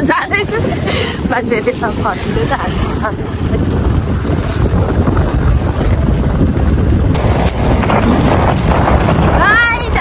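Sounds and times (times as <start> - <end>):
motorcycle engine and road rumble: 0.0 - 10.0
wind buffeting microphone: 0.0 - 10.0.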